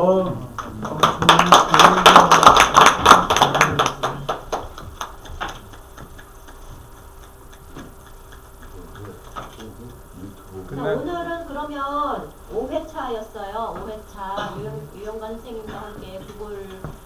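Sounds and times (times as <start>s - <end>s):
small audience clapping: 0.4s - 10.0s.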